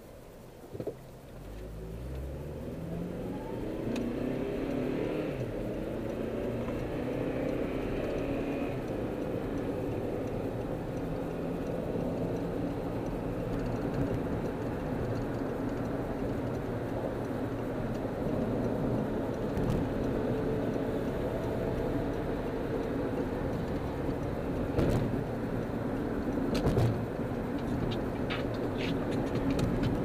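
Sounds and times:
road noise: 0.0 - 30.0
car engine accelerating: 1.2 - 30.0.

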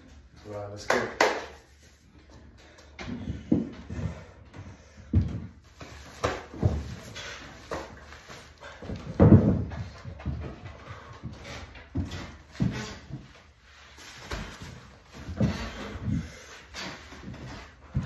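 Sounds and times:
man breathing hard: 14.6 - 18.0.

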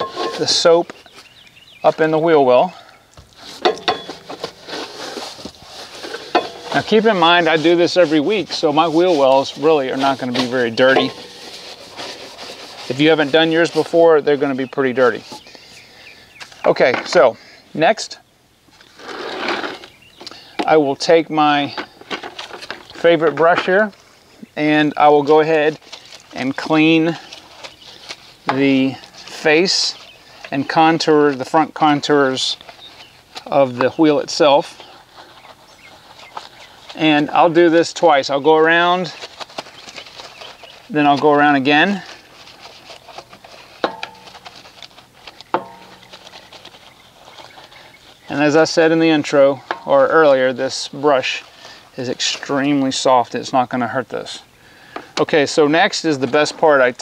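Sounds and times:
brushes rustling scrape: 0.0 - 17.4, 18.7 - 54.4, 55.2 - 57.0.

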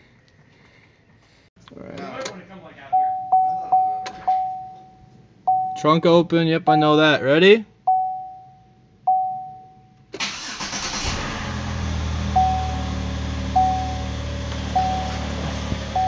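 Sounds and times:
electronic dashboard chimes: 2.9 - 7.2, 7.9 - 10.0, 12.3 - 15.3
car engine cranking and idling: 10.2 - 16.0.

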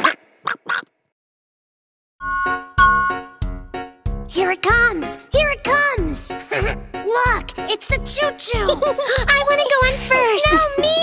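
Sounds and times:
cartoon duck quacks: 0.0 - 0.9
voice: 7.1 - 11.0.

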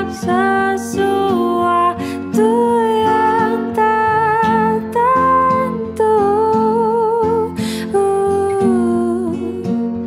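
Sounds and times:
acoustic guitars picking: 0.0 - 10.0.

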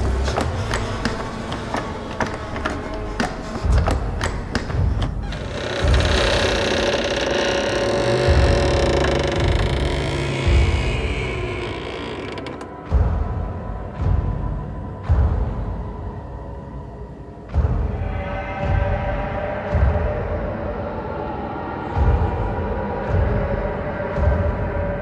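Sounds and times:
irregular clicks and creaks: 0.0 - 12.7
low thuds: 0.0 - 13.4.

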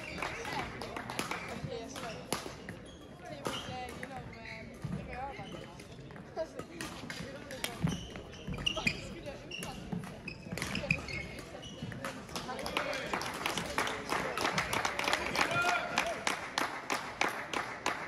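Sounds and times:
rackets hitting shuttlecock: 0.0 - 4.2, 6.6 - 15.3.

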